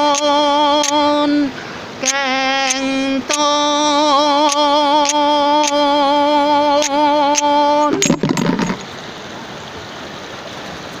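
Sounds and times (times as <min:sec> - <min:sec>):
water running over rocks: 0:00.0 - 0:11.0.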